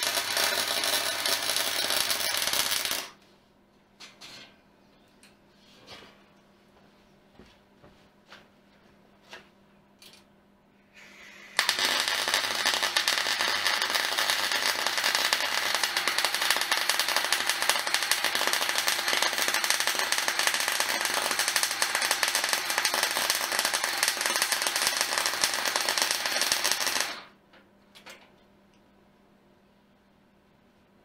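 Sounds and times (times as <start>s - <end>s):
crackling welding arc: 0.0s - 3.2s, 11.0s - 27.3s.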